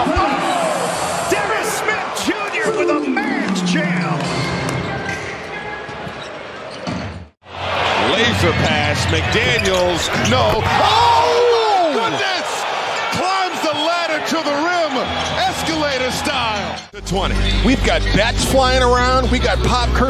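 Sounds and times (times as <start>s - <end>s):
crowd cheering and shouting: 0.0s - 6.0s, 7.4s - 19.6s
arena noise: 0.0s - 19.2s.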